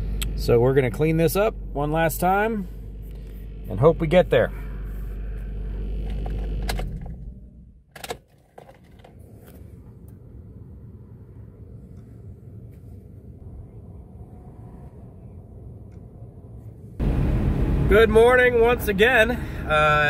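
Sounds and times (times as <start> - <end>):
car engine idling: 0.0 - 7.9, 15.5 - 20.0.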